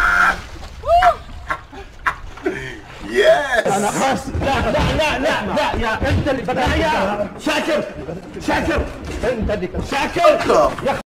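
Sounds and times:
man laughing: 0:00.9 - 0:04.5.

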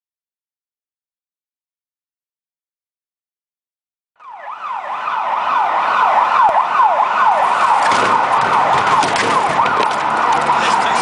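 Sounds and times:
siren yelping: 0:04.2 - 0:11.0.

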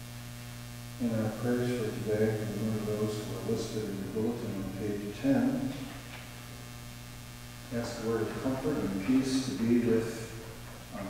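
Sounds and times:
electrical mains hum: 0:00.0 - 0:11.0
man's voice: 0:01.0 - 0:06.0, 0:07.7 - 0:11.0.

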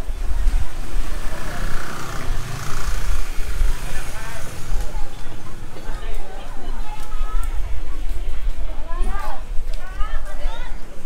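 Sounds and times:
people's voices: 0:00.0 - 0:11.0
motor scooter engine running: 0:00.3 - 0:05.1.

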